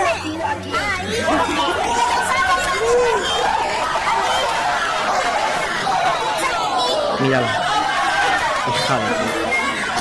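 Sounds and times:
studio chatter: 0.0s - 10.0s
voices talking over one another: 0.0s - 10.0s.

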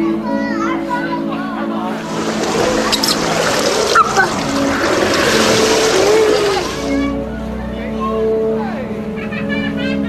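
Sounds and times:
water splashing in a pool: 1.9s - 7.1s.

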